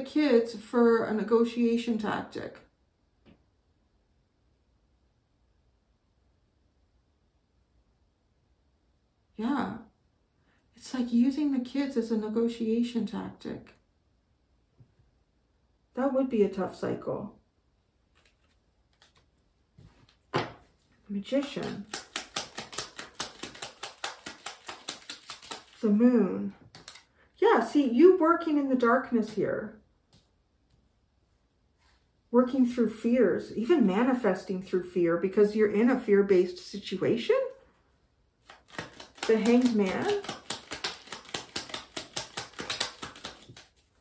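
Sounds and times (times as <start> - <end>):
cards being shuffled: 18.1 - 26.0, 26.6 - 27.1, 38.4 - 44.0.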